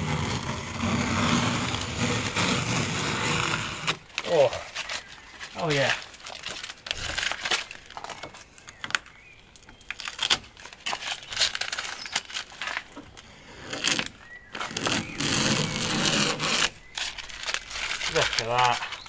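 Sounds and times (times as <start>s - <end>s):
tape being peeled off: 0.0s - 19.0s
tape crinkling in hand: 3.9s - 19.0s.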